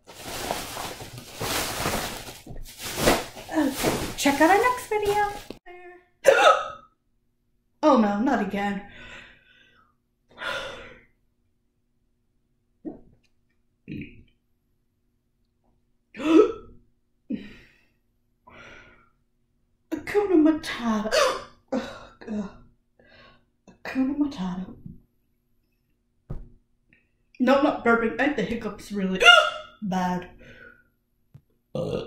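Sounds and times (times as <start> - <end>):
plastic bags rustling: 0.0 - 5.6
woman hiccuping: 6.2 - 6.9, 29.2 - 29.8.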